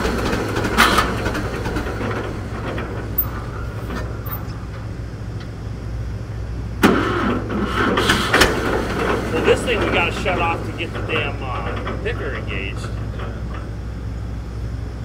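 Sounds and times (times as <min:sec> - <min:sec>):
tractor engine idling: 0:00.0 - 0:06.7, 0:07.5 - 0:15.0.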